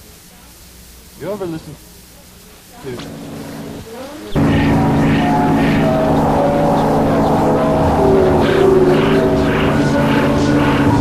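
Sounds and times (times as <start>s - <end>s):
hissy percussive hits: 3.0s - 11.0s
electronic music: 4.4s - 11.0s.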